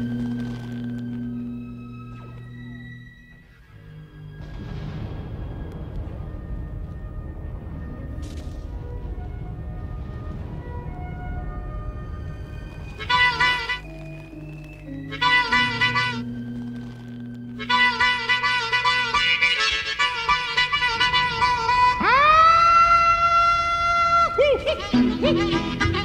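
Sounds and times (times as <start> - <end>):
quiet background music: 0.0 - 26.0
blues harmonica: 13.0 - 22.3, 23.2 - 26.0.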